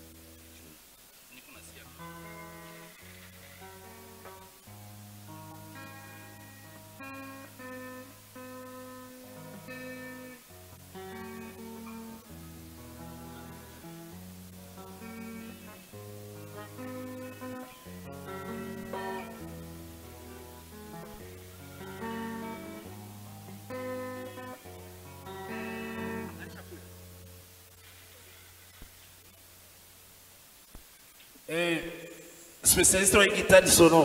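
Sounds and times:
guitar melody: 0:01.7 - 0:27.8.

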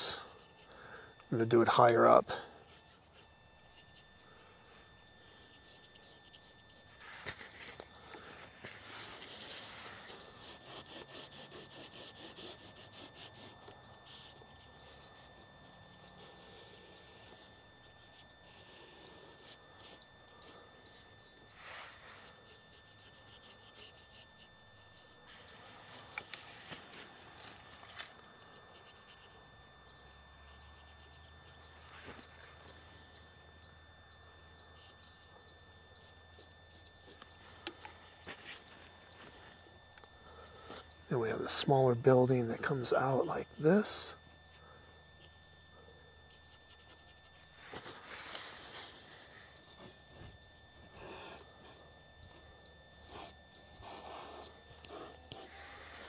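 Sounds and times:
paintbrush scrubbing on canvas: 0:05.2 - 0:28.1, 0:53.0 - 0:56.0.

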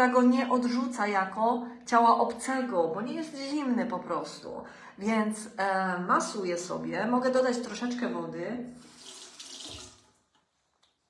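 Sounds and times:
water tap running into sink: 0:08.7 - 0:10.3.

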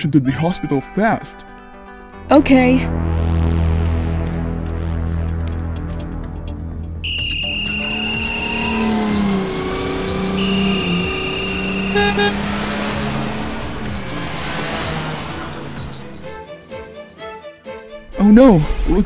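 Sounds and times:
car horns honking: 0:07.0 - 0:13.9
running vehicles: 0:07.0 - 0:16.4.

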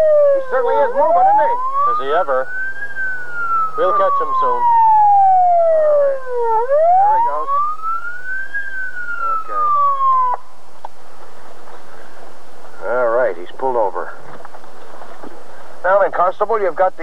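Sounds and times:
police siren wailing: 0:00.0 - 0:10.6.

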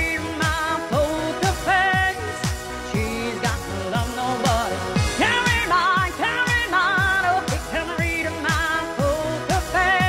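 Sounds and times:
pop song: 0:00.0 - 0:10.0
steady kick drum: 0:00.0 - 0:10.0.

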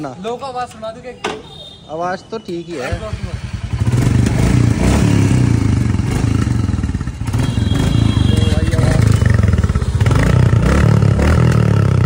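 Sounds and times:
motorcycle engine running loudly: 0:03.0 - 0:12.0.

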